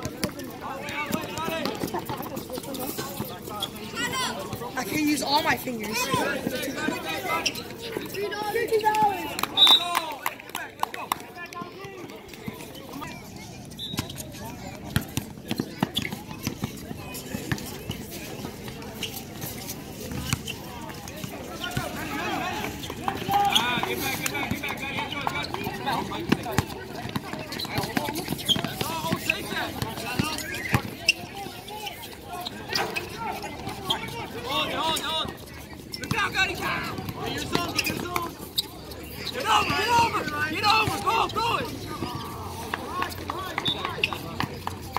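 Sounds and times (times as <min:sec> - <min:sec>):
footsteps on court: 0:00.0 - 0:44.9
people calling out: 0:36.1 - 0:44.3.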